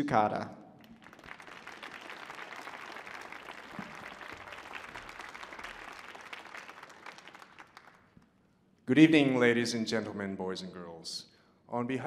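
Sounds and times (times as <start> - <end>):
audience applauding: 0.8 - 8.2.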